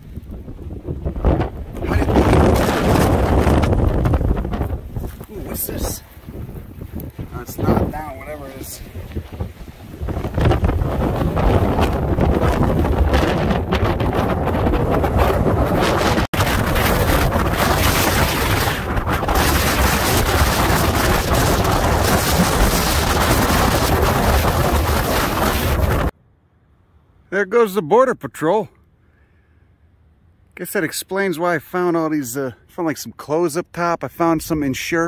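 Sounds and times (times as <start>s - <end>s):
strong wind on microphone: 0.0s - 26.2s.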